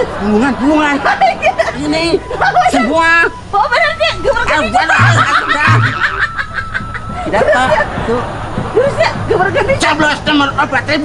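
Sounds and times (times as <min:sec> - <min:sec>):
thin steady high tone: 0:01.6 - 0:08.2.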